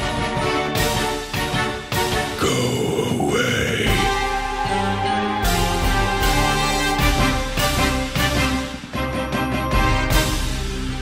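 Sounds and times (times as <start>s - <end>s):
marching band music: 4.0s - 10.9s.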